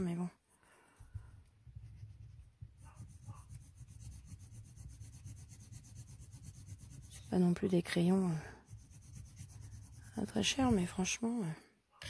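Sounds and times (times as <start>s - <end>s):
coloured pencil rubbing on paper: 1.6s - 11.2s.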